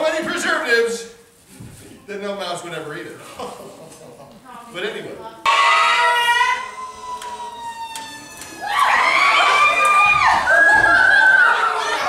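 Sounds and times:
fire engine siren: 0:05.5 - 0:12.0.

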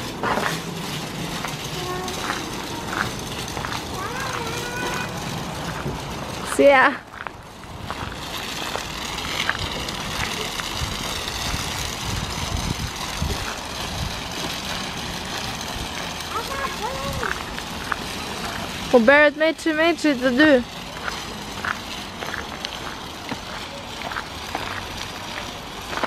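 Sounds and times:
walking footsteps: 0:00.0 - 0:06.4, 0:07.1 - 0:11.9, 0:19.7 - 0:26.0
stroller wheels rolling on asphalt: 0:00.0 - 0:26.0.

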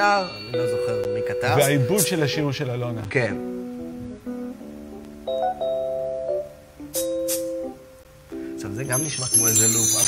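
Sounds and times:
held chords: 0:00.0 - 0:10.0.

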